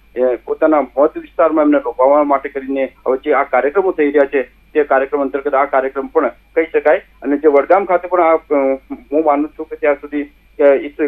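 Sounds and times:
man talking on phone-like voice: 0:00.2 - 0:11.0.

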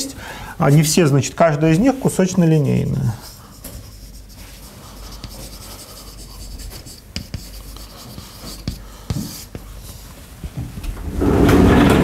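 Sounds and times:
chalk scratching on chalkboard: 0:00.6 - 0:10.2
chalk tapping on board: 0:00.8 - 0:10.0.

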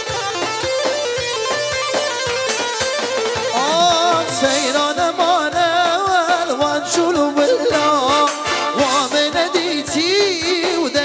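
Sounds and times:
keyboard: 0:00.0 - 0:11.0
ornamented lead melody: 0:00.0 - 0:11.0
steady drum beat: 0:00.0 - 0:11.0.

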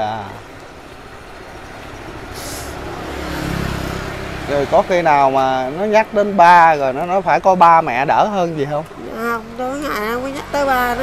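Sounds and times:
vehicle engine rumble passing: 0:00.0 - 0:11.0.

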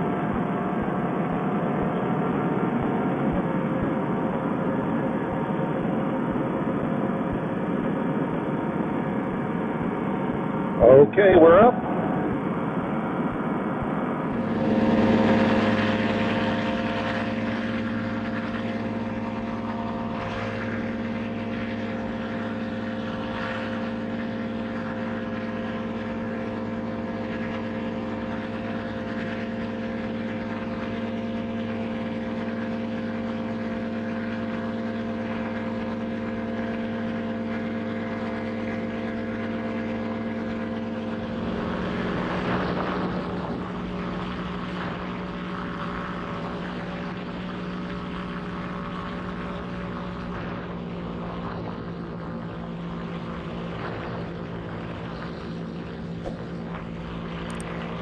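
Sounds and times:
paramotor engine droning: 0:00.0 - 0:58.0.

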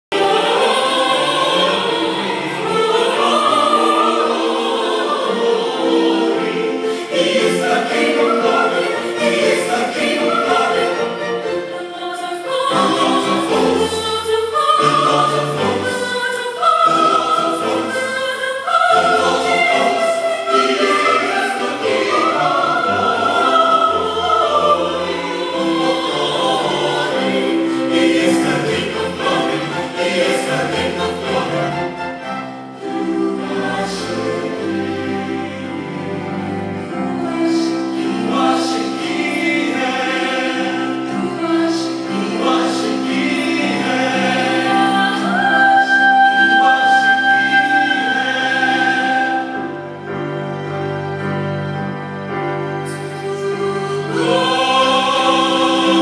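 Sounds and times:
choir singing with orchestra: 0:00.0 - 0:56.0.

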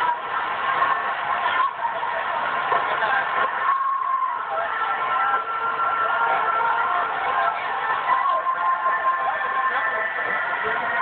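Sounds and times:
people shouting through tv speaker: 0:00.0 - 0:11.0.

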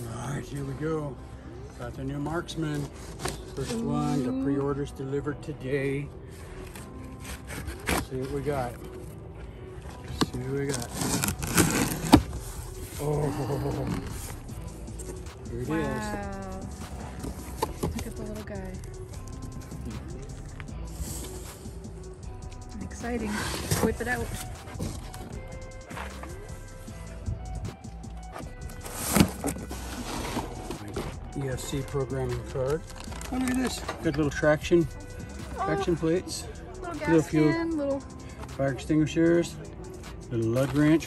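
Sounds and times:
cardboard rustling and scraping: 0:06.7 - 0:09.2, 0:10.1 - 0:15.2, 0:16.9 - 0:18.2, 0:23.2 - 0:25.3, 0:28.3 - 0:33.9
cardboard flaps tearing: 0:10.7 - 0:12.3
packing tape ripping: 0:10.7 - 0:12.4.

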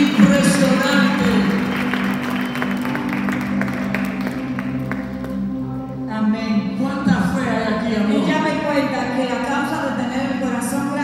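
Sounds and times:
congregation handclaps: 0:00.0 - 0:05.6
church band music: 0:00.0 - 0:09.0.

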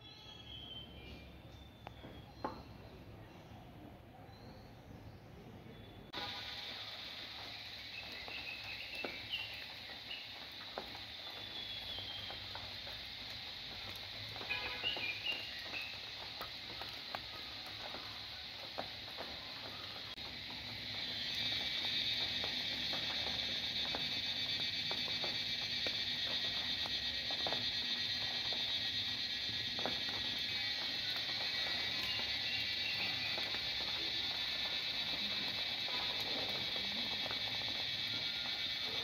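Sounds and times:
cicadas buzzing: 0:06.1 - 0:39.0.

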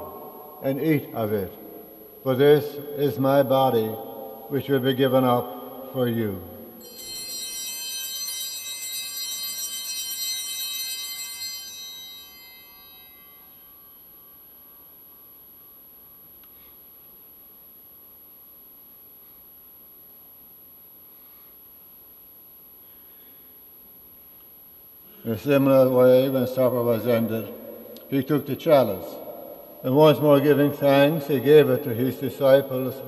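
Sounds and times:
altar bell chime: 0:06.8 - 0:16.3.

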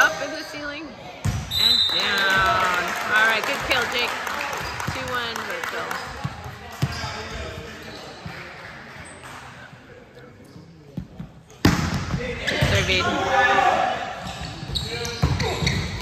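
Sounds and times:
voices in a gym: 0:00.0 - 0:16.0.

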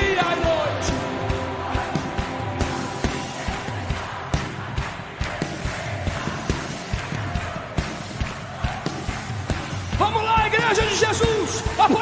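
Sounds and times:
steady drum beat: 0:00.0 - 0:12.0.

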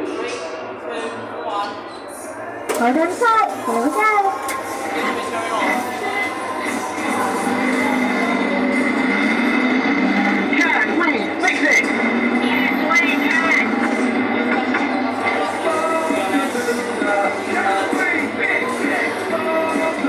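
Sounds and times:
voices from speaker: 0:00.0 - 0:08.7, 0:10.5 - 0:13.9
music from speaker: 0:02.7 - 0:20.0.

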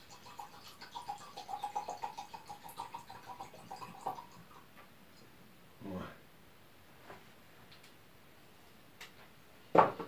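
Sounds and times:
liquid gurgling into glass: 0:00.0 - 0:04.6.

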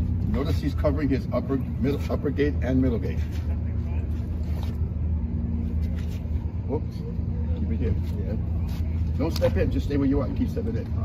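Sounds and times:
engine humming: 0:00.0 - 0:11.0.

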